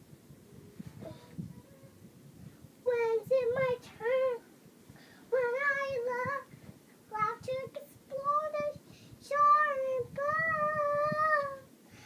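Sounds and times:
girl singing high note: 7.1s - 11.7s.

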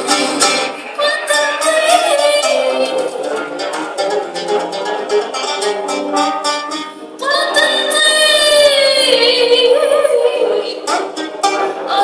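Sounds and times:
plucked strings: 0.0s - 12.0s.

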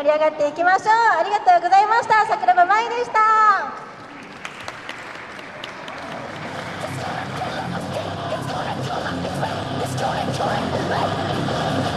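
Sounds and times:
audience applauding: 3.9s - 8.0s.

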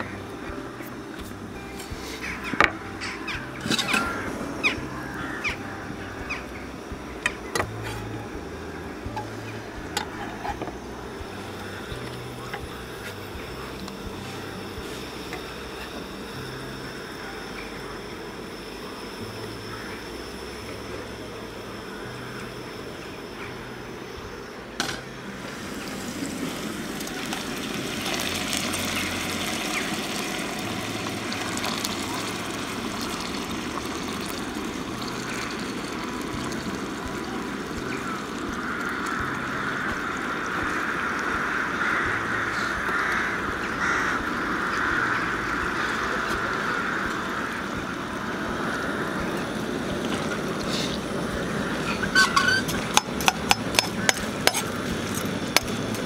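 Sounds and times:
oil sizzling in a frying pan: 25.4s - 41.5s.

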